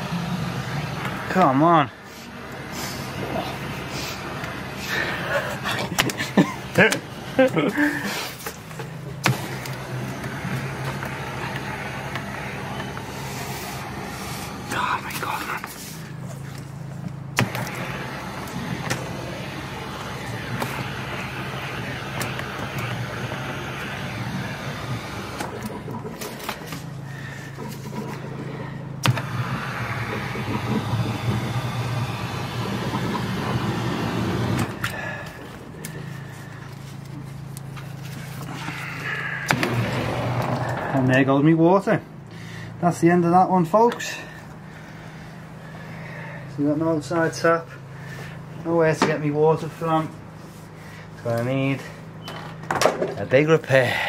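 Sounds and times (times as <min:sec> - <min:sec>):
high-pressure water hissing: 0:00.0 - 0:08.6, 0:09.2 - 0:16.2, 0:17.4 - 0:36.3
engine running steadily: 0:00.0 - 0:54.0.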